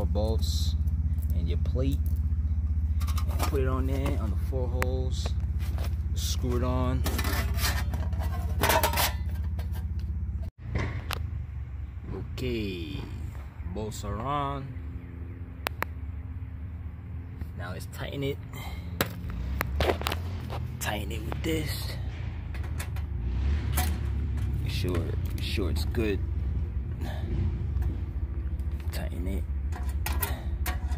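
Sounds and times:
metal plate rustling and scraping: 0:02.9 - 0:04.4, 0:05.5 - 0:10.1, 0:19.6 - 0:25.2, 0:29.6 - 0:30.9.

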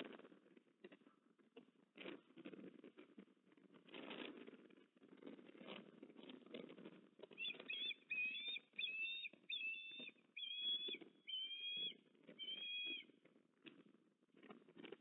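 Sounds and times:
soft rustling in nest: 0:00.0 - 0:15.0
osprey chirping whistles: 0:07.4 - 0:13.1.

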